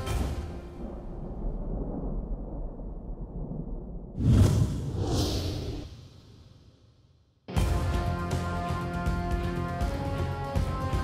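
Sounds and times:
cinematic whoosh: 4.2s - 6.5s.

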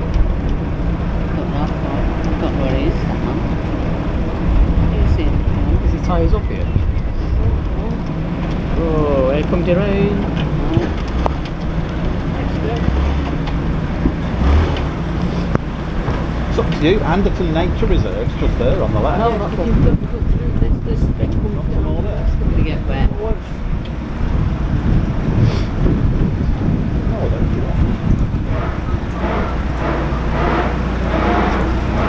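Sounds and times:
boat engine running low: 0.0s - 32.0s.

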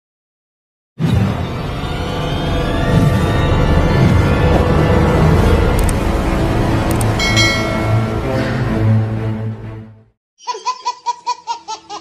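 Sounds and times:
music: 1.0s - 10.2s
high-pitched laughter: 10.4s - 12.0s.

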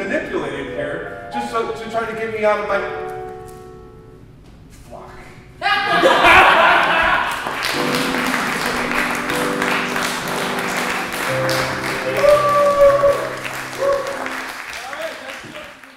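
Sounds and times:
audience applauding: 6.0s - 15.9s
music with long held notes: 7.5s - 14.7s.

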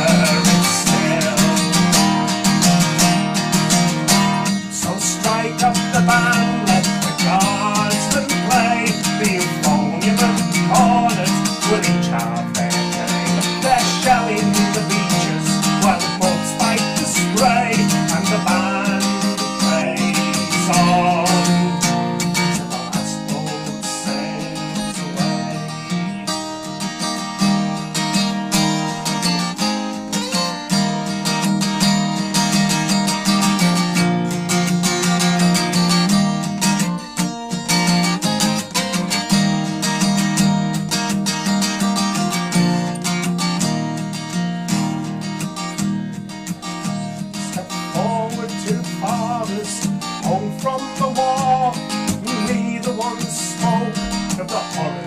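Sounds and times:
acoustic guitar strumming: 0.0s - 55.0s
person singing folk song: 0.0s - 55.0s.

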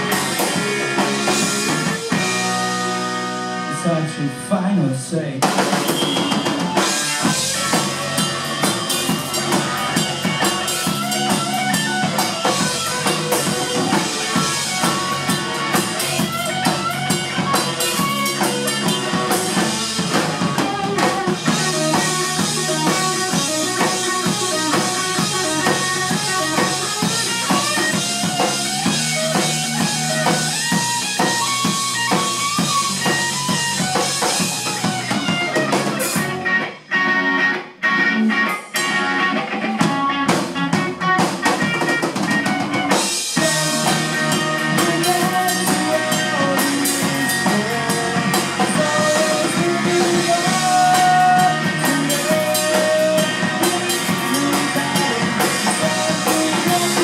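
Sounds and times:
rock band playing: 0.0s - 57.0s.

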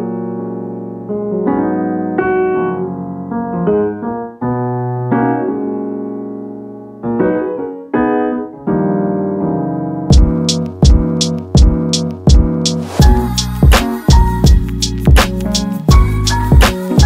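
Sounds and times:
piano chords: 0.0s - 17.0s.

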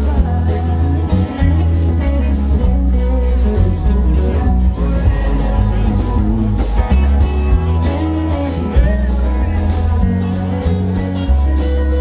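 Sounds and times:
amplified electric guitars: 0.0s - 12.0s
heavy bass line: 0.0s - 12.0s
man singing: 0.0s - 12.0s.

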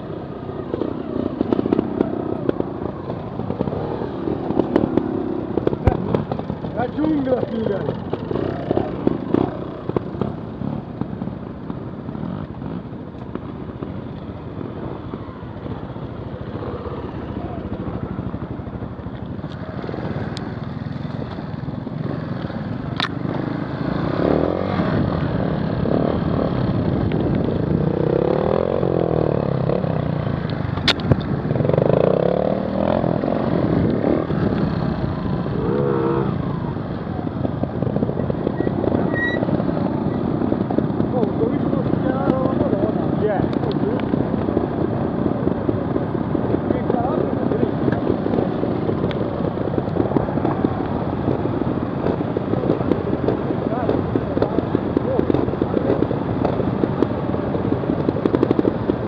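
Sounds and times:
motorcycle engine revving: 0.0s - 59.0s
wind noise: 0.0s - 59.0s.

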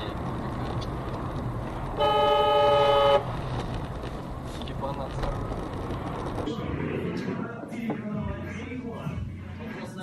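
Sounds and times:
car road and engine rumble: 0.0s - 10.0s
vehicle horn blast: 2.0s - 3.3s.

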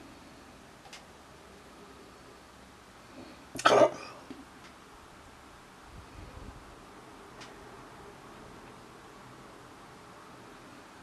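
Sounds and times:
person coughing: 3.6s - 4.2s.

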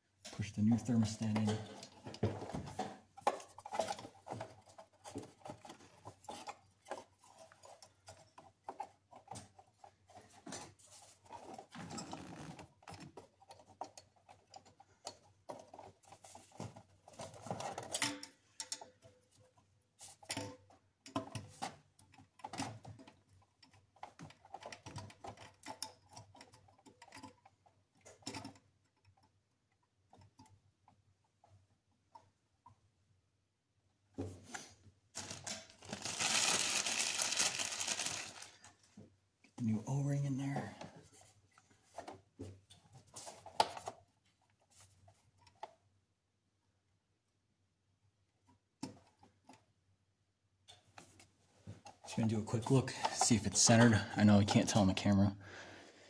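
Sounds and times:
small clicks taps and scrapes: 0.2s - 32.9s, 40.4s - 45.9s, 48.4s - 49.7s.

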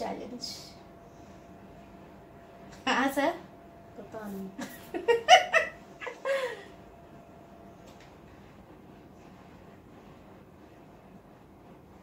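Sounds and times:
woman laughing: 4.6s - 6.7s.

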